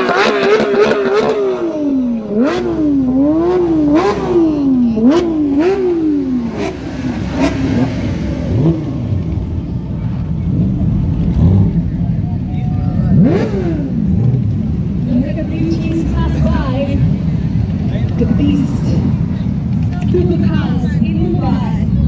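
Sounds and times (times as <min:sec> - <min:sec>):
exhaust cracks: 0:00.0 - 0:22.0
sports car engine revving: 0:00.0 - 0:22.0.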